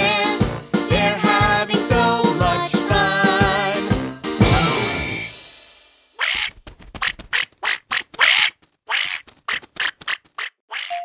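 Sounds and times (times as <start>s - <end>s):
cartoon duckling quacking: 6.2s - 11.0s.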